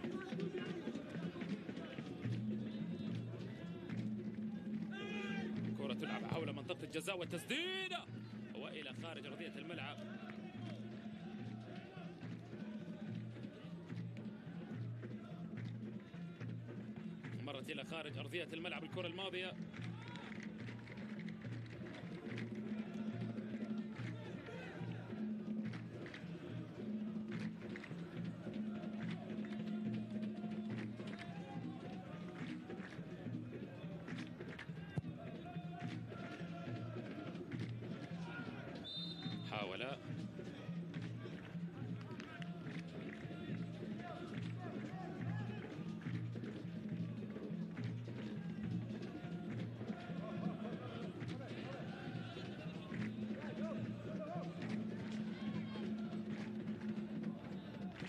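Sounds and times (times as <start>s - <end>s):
crowd chanting: 0.0s - 17.2s, 17.8s - 58.0s
supporters beating drums: 0.0s - 58.0s.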